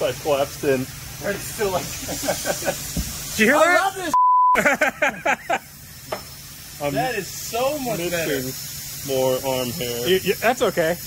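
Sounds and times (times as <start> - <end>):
people talking: 0.0 - 5.1, 6.8 - 11.0
compressed air hissing into tire: 0.0 - 11.0.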